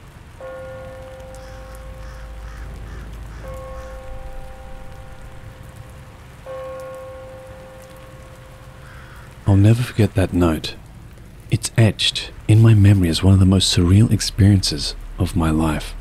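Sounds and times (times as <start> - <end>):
steady rain: 0.0 - 16.0
bell-like tones: 0.4 - 9.0.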